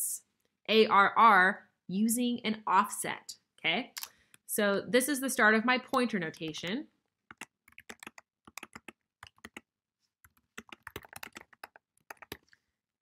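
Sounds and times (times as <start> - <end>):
faint keyboard typing: 5.9 - 12.6.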